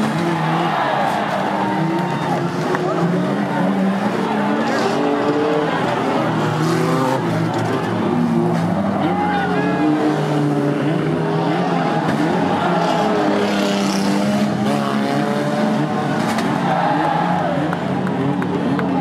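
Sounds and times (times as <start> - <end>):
car engines revving: 0.0 - 19.0
cars shunting: 0.0 - 19.0.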